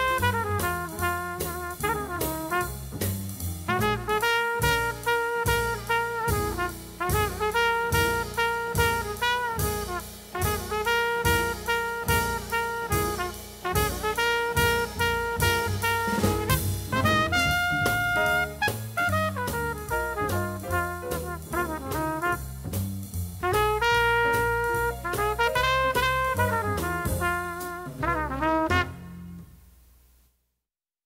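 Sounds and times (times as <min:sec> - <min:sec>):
trumpet fast melodic lines: 0:00.0 - 0:02.7, 0:03.7 - 0:22.6, 0:23.4 - 0:29.1
jazz quartet playing: 0:00.0 - 0:29.5.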